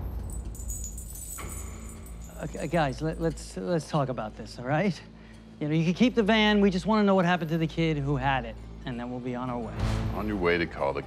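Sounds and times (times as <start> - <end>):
light metallic jingling: 0.0 - 4.6.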